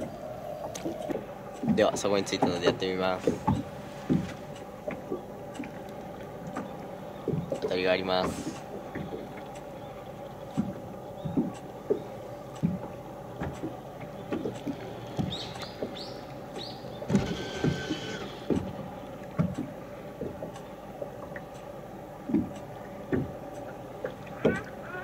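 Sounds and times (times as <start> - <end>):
soft knocks against hull: 0.0 - 5.8, 13.4 - 17.8, 23.1 - 23.4
electric trolling motor humming: 13.3 - 19.1.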